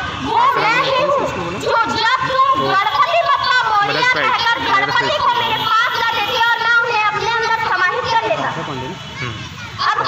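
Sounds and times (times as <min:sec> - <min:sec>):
children's voices: 0:00.0 - 0:08.4, 0:09.0 - 0:10.0
girl speaking into microphone: 0:00.3 - 0:08.4, 0:09.2 - 0:10.0.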